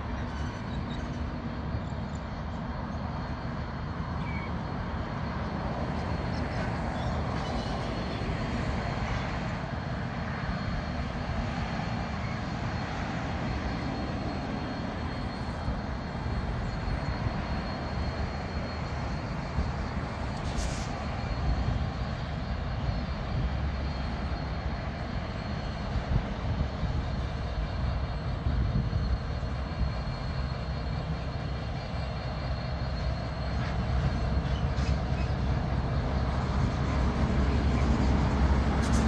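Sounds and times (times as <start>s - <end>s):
diesel locomotives droning: 0.0s - 39.0s.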